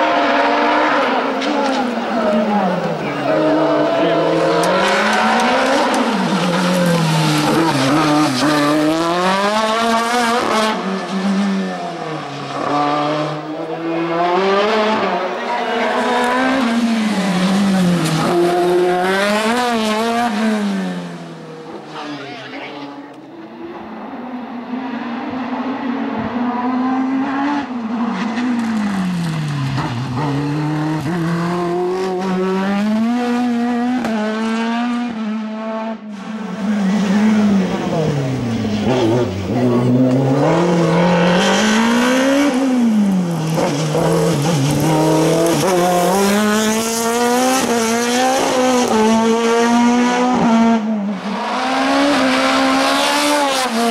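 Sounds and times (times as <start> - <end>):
race car engine revving: 0.0 - 53.9.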